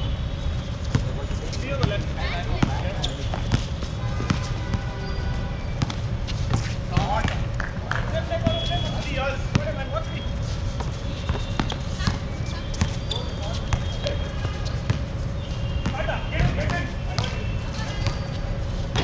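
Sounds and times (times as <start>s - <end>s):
basketball bouncing on court: 0.8s - 1.2s, 1.8s - 8.8s, 9.4s - 9.8s, 10.8s - 19.0s.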